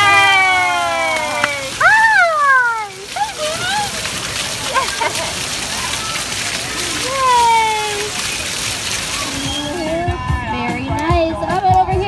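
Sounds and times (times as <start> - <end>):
fountain water jets splashing: 0.0 - 12.0.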